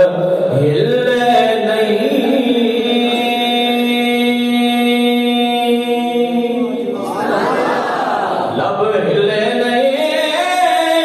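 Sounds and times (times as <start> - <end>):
man chanting into a microphone: 0.0 - 7.0, 8.5 - 11.0.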